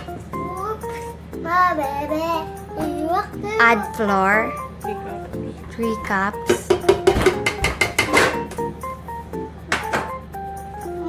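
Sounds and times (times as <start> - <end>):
background music: 0.0 - 11.0
metal sieve tapping on bowl: 6.5 - 8.4.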